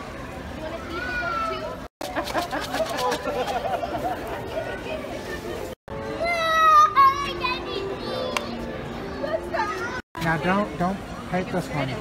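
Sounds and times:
young children chattering: 0.5s - 1.9s, 3.2s - 10.0s.

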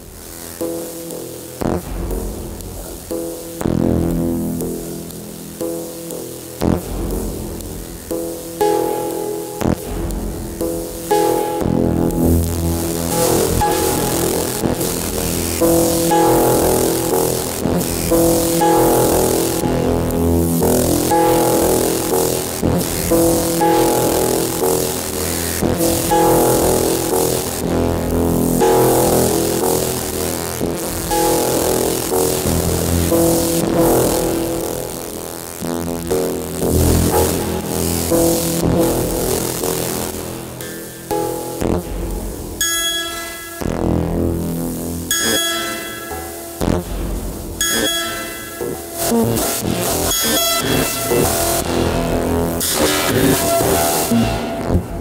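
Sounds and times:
rapid stuttering buzz: 0.0s - 42.3s, 43.7s - 55.0s
buzzy droning synth tones: 0.0s - 55.0s
held synth tones: 47.6s - 51.7s.

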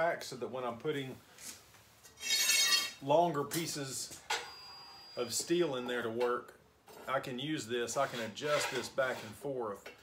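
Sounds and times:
steel bar clinking and ringing: 2.2s - 3.0s.

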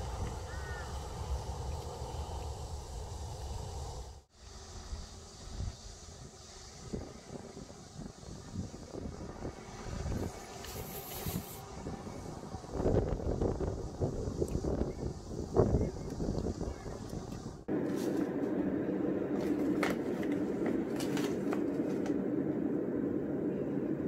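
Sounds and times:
wind on microphone: 0.0s - 17.7s.

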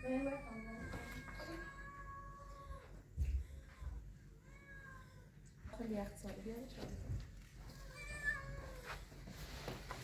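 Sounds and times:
cat meowing: 7.7s - 9.0s.

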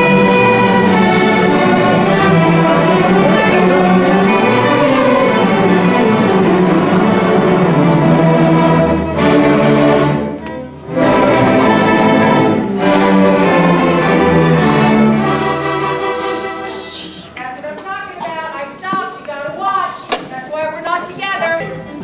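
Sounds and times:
string orchestra playing chords: 0.0s - 17.4s, 20.6s - 22.0s.

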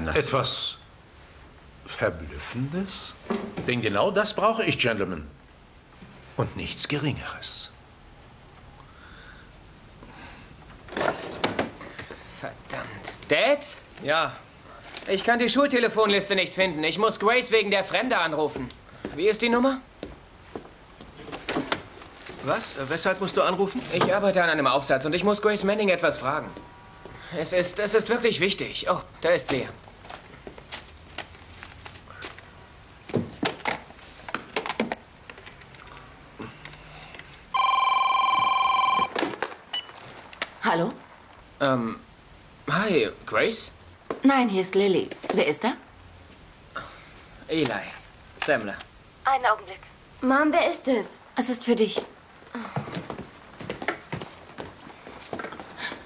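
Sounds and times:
light footsteps on indoor floor: 19.9s - 22.6s, 51.9s - 56.0s
telephone ringing: 37.5s - 40.1s.

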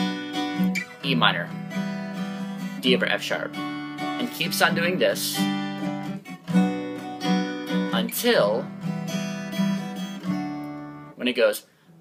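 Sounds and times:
acoustic guitar strumming chords: 0.0s - 11.2s.

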